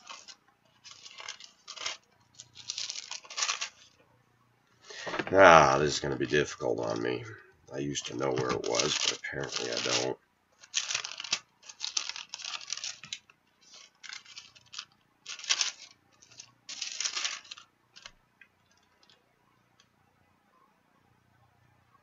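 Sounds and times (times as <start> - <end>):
book pages flipping: 0.0 - 4.0, 7.9 - 19.2.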